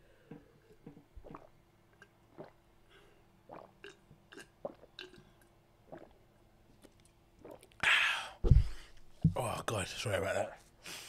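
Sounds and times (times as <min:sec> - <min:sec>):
man gulping water: 0:00.2 - 0:02.8, 0:03.4 - 0:06.3, 0:07.4 - 0:07.8.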